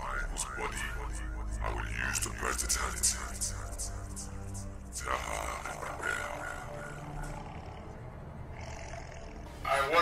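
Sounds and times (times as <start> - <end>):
dramatic film music drone: 0.0 - 10.0.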